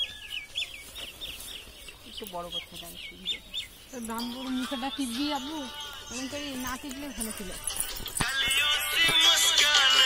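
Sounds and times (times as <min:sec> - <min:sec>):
bird chirping: 0:00.0 - 0:08.8.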